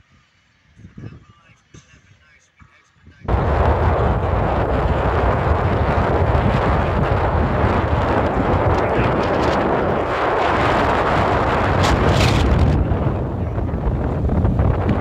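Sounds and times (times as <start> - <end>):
wind buffeting microphone: 0.7 - 2.0, 3.1 - 15.0
road and engine rumble: 3.2 - 15.0.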